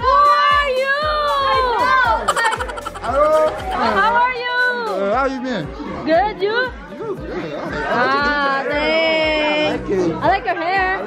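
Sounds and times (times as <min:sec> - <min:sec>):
people talking and calling out: 0:00.0 - 0:11.0.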